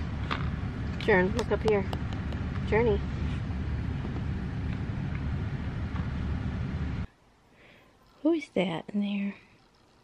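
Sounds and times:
car cabin rumble: 0.0 - 7.1.

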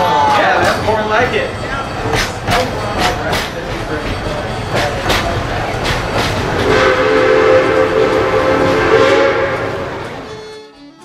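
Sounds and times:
train rattling on rails: 0.0 - 11.0
fiddle music: 6.6 - 11.0
train whistle chord: 6.6 - 11.0.

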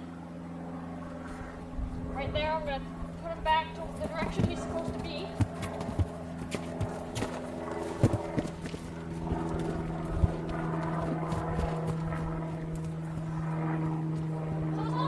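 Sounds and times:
steady low hum: 0.0 - 15.0
horse hooves thudding on grass: 3.5 - 14.5.

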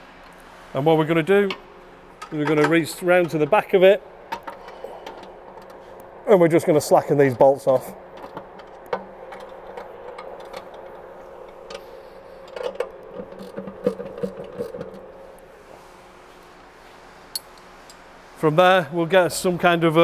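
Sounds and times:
steady hum: 0.0 - 20.0.

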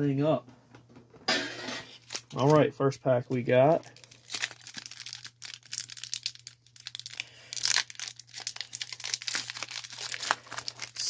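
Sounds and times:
foil pack tearing and crinkling: 1.8 - 2.6, 3.8 - 11.0.

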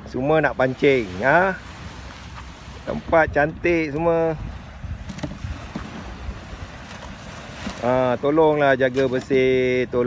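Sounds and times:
waves washing on shore: 0.0 - 10.0
wind on microphone: 0.7 - 8.3.

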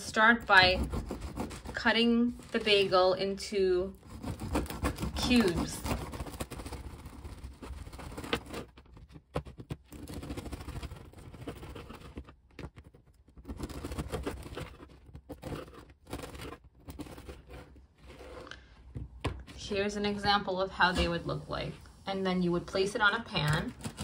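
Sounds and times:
bread knife sawing through bagel: 0.2 - 8.7.

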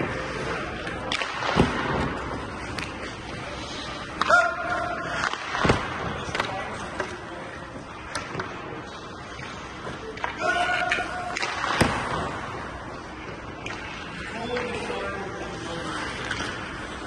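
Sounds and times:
skates scraping on ice: 0.0 - 17.0.

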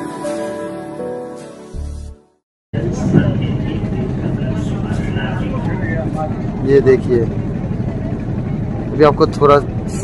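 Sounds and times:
boat engine rumble: 2.8 - 10.0.

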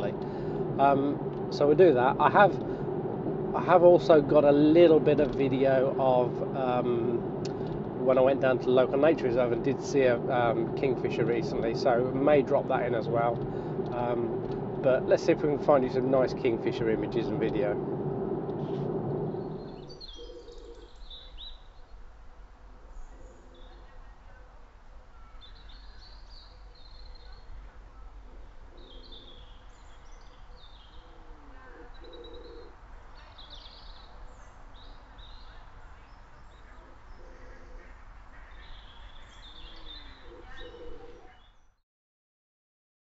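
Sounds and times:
car cabin noise: 0.0 - 20.1
faint low rumble: 0.0 - 21.7
low bird call: 0.0 - 21.7, 25.1 - 41.6
small birds chirping: 18.6 - 22.0, 25.2 - 41.8.

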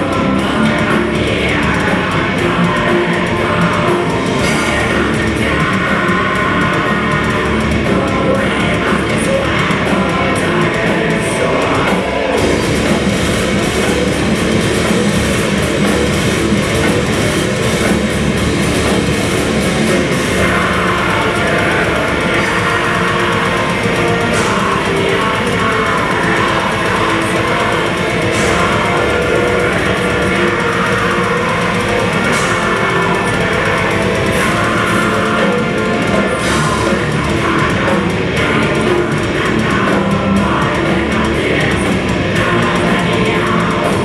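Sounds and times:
heavy metal band playing: 0.0 - 44.0.

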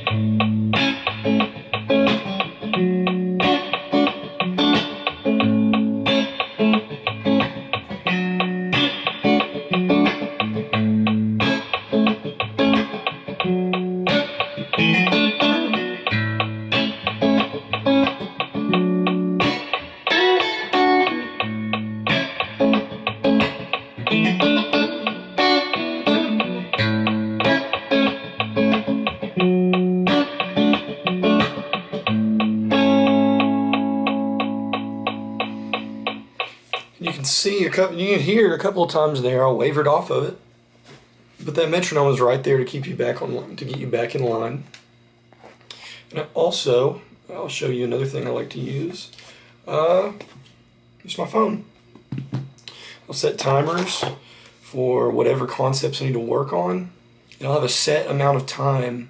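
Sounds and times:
metronome clicking: 0.0 - 37.6
electric guitar playing chords: 0.0 - 40.2.

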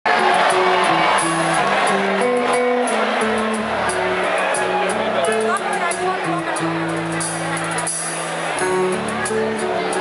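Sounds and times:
live rock band playing: 0.1 - 10.0.

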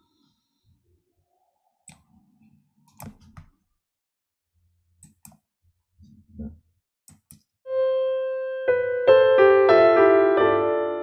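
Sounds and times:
computer mouse clicks: 7.1 - 7.5.

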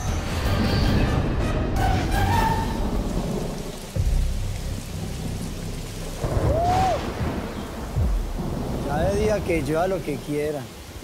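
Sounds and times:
steady rain: 0.0 - 11.0
thunder rumbling: 1.3 - 11.0.

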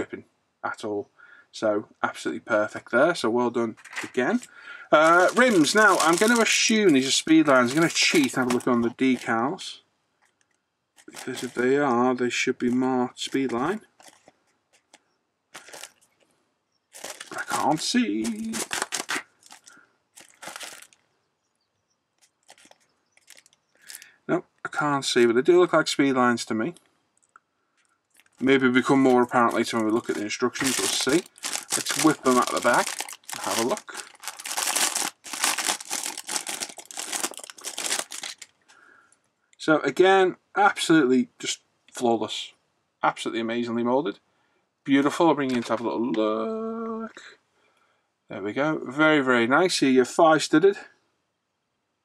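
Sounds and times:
plastic bag crinkling: 3.7 - 9.7, 10.3 - 16.3, 16.9 - 21.0, 22.2 - 24.1, 27.2 - 38.7.

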